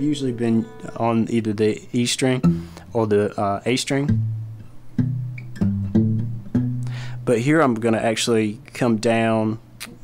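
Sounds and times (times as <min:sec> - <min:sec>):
acoustic guitar bass notes: 0:00.0 - 0:07.6.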